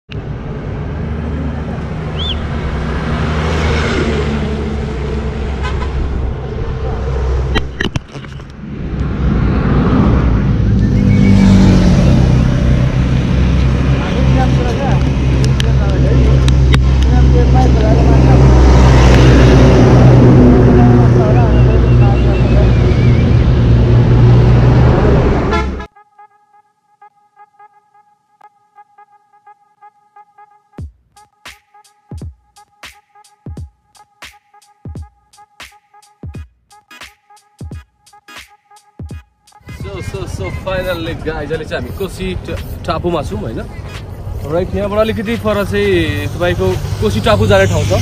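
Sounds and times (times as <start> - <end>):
trucks passing close by: 0.1 - 25.9, 39.5 - 48.0.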